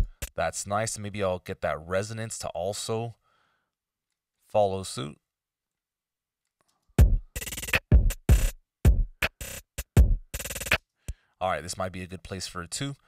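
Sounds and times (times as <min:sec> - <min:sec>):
drum machine beat: 0:00.0 - 0:00.4, 0:07.0 - 0:10.8.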